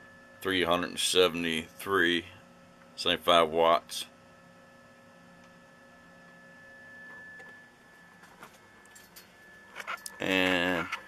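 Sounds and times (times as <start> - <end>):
electrical hum with high whine: 0.0 - 11.0.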